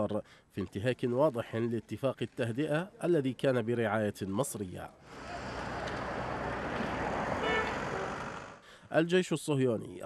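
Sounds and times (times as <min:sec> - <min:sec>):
cars driving past: 0:05.1 - 0:08.6.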